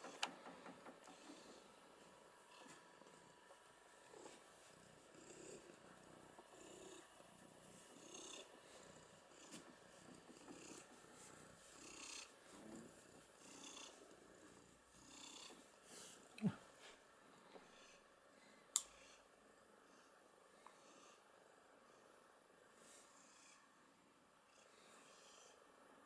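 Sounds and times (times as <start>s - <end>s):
cat purring: 0.0s - 16.6s.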